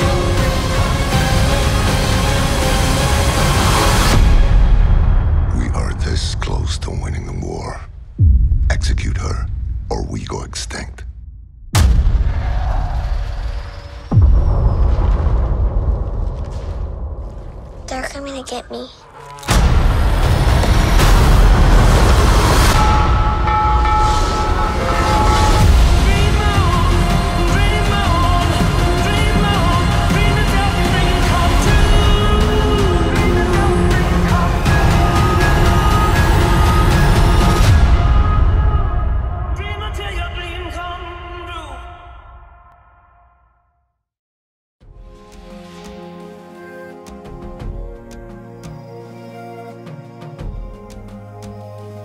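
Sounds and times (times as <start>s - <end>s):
film trailer score: 0.0s - 44.1s, 44.8s - 52.0s
low rumble: 2.1s - 17.9s
battle and explosion rumble: 7.9s - 18.0s, 19.6s - 40.7s.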